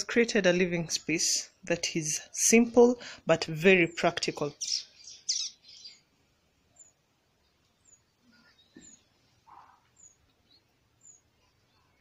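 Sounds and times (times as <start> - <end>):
small bird chirping: 3.9 - 12.0.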